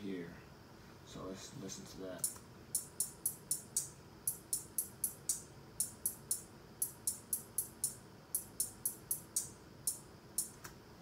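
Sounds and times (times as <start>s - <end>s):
hi-hat ticks: 2.2s - 10.7s.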